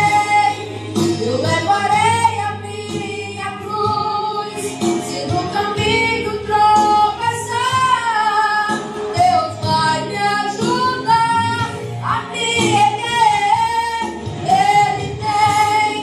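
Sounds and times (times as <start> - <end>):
instrumental backing: 0.0 - 16.0
woman singing into microphone: 0.0 - 16.0.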